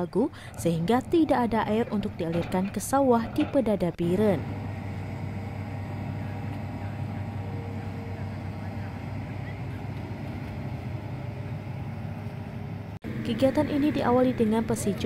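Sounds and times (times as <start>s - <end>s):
diesel engine humming: 0.0s - 15.0s
faint workers' voices: 0.1s - 11.8s.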